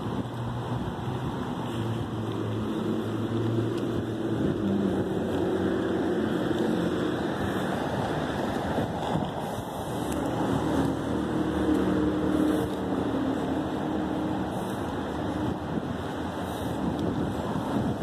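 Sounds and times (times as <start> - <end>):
low engine hum: 0.0 - 18.0
traffic hiss: 0.0 - 18.0.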